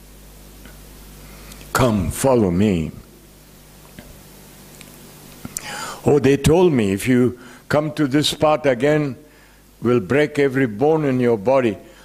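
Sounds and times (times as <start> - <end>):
faint room hum: 0.0 - 12.0
man drawing breath: 5.5 - 6.0.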